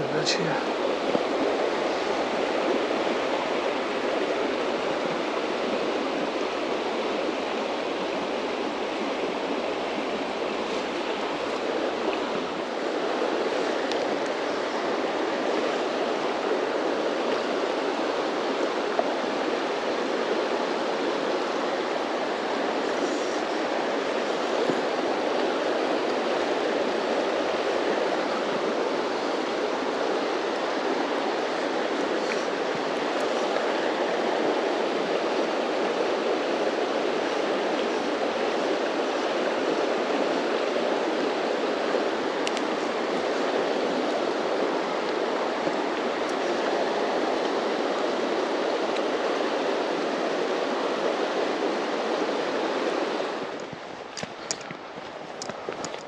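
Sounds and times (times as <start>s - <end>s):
river water flowing over stones: 0.0s - 56.0s.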